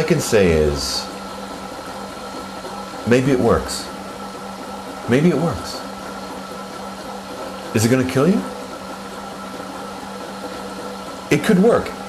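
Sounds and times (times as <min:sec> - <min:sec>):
immersion circulator humming: 0:00.0 - 0:12.0.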